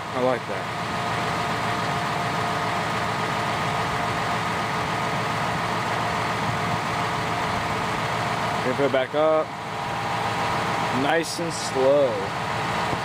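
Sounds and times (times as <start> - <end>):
tractor diesel engine idling: 0.0 - 13.0.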